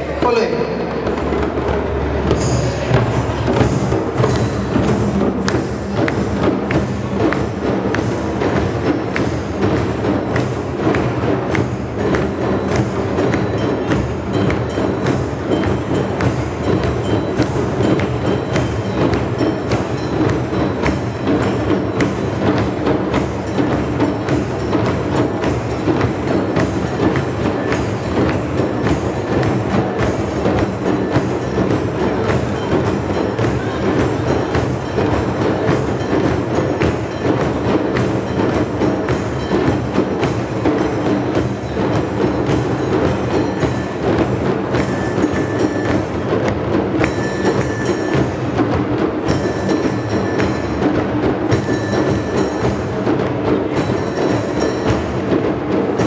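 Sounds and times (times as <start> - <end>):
drum circle of djembes: 0.0 - 56.0.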